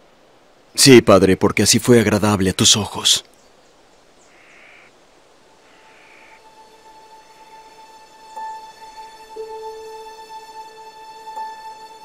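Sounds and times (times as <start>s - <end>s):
raspy bird calls: 3.0s - 7.9s.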